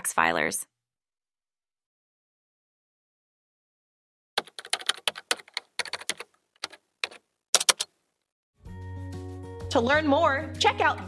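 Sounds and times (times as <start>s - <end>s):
keyboard typing clicks: 4.4s - 7.9s
background music sustained tones: 8.6s - 11.0s.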